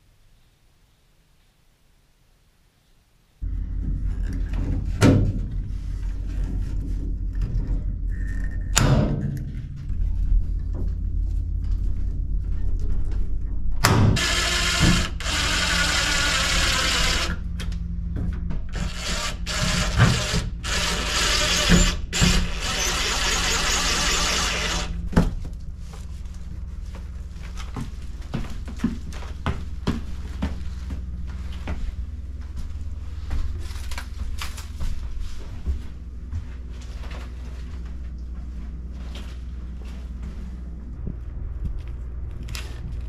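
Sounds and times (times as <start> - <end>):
cordless drill running: 14.2 - 17.4, 18.8 - 25.0.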